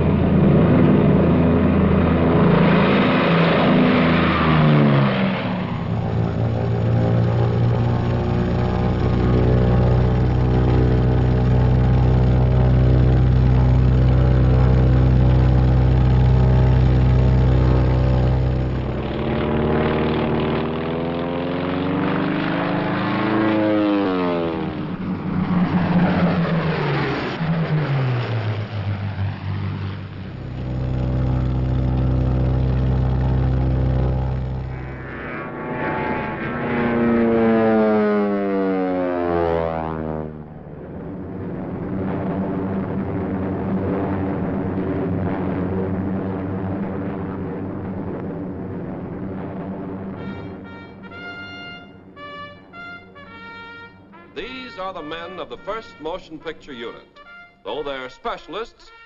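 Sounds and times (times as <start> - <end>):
propeller aircraft droning: 0.0 - 59.0.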